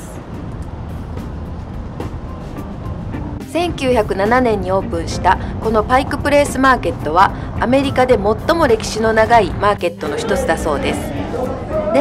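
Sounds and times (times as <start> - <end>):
background music: 0.0 - 12.0
traffic passing: 0.0 - 12.0.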